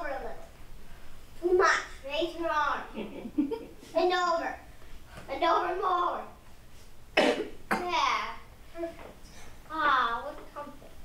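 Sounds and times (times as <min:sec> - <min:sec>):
child's voice: 0:00.0 - 0:00.5, 0:01.4 - 0:02.9, 0:03.9 - 0:04.7, 0:05.3 - 0:06.4, 0:07.7 - 0:09.1, 0:09.7 - 0:11.0
child coughing: 0:07.2 - 0:08.0.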